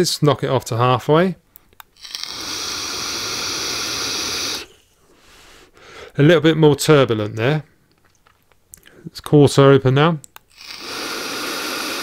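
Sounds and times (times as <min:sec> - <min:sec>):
air rushing through vape: 0:02.0 - 0:04.8, 0:10.5 - 0:12.0.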